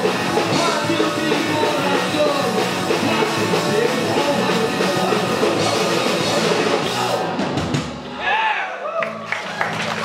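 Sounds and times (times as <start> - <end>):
distorted electric guitars: 0.0 - 8.2
electric bass: 0.0 - 8.2
drum kit: 0.0 - 8.4.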